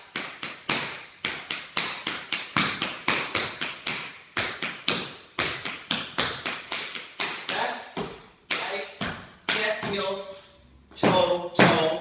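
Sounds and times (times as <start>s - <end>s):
tap shoes on wooden floor: 0.1s - 10.1s, 11.0s - 12.0s.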